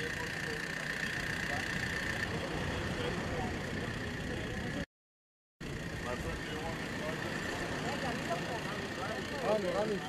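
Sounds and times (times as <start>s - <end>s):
people talking over one another: 6.0s - 10.0s.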